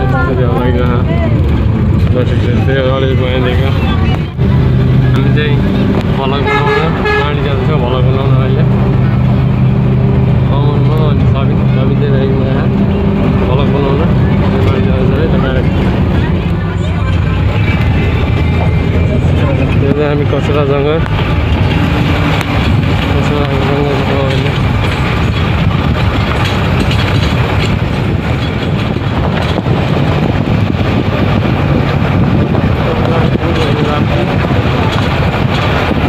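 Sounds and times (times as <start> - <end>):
bus engine running: 0.0 - 36.0
voices: 0.0 - 36.0.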